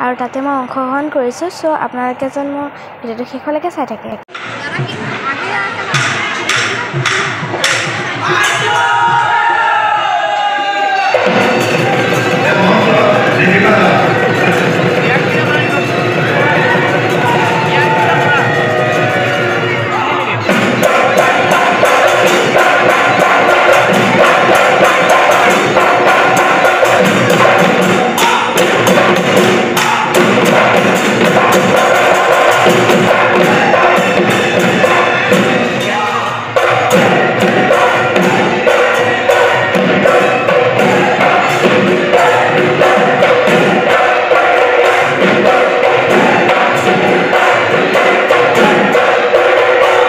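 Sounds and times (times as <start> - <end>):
drums in fast rhythm: 4.3 - 50.0.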